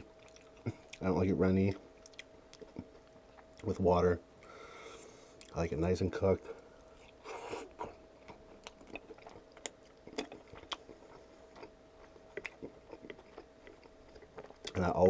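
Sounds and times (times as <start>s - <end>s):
man chewing food: 0.0s - 1.0s, 2.0s - 3.7s, 6.7s - 15.0s.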